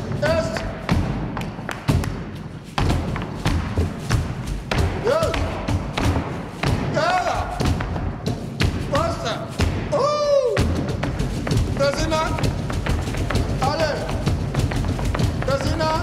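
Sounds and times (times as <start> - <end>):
feet stamping on wooden floor: 0.0 - 16.0.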